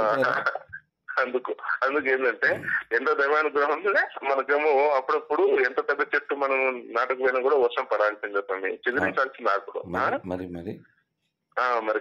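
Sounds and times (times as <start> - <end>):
man talking: 0.0 - 10.8, 11.6 - 12.0.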